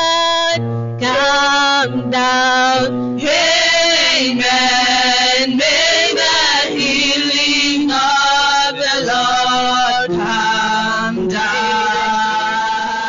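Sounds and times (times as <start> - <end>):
woman singing into microphone: 0.0 - 13.0.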